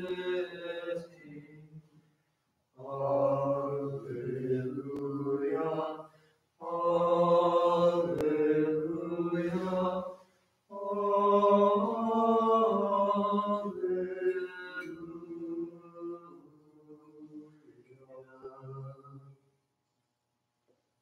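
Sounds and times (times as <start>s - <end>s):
unaccompanied liturgical chant: 0.0s - 2.0s, 2.8s - 19.4s.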